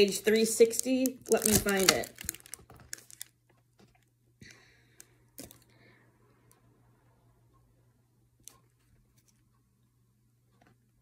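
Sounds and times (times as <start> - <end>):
book pages rustling: 0.0 - 4.1.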